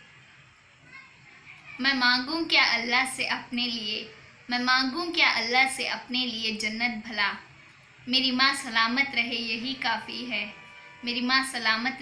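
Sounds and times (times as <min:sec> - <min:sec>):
faint distant voices: 0:00.0 - 0:12.0
woman speaking: 0:01.5 - 0:07.5, 0:08.1 - 0:12.0.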